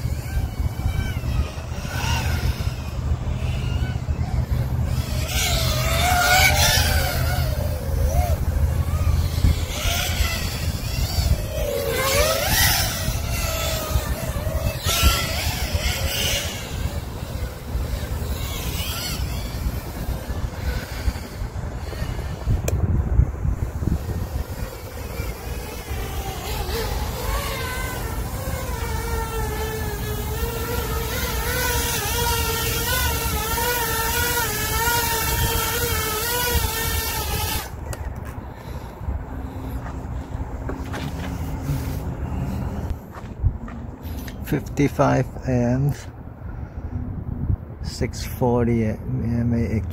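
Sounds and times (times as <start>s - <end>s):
quadcopter motors whining: 0.0s - 47.2s.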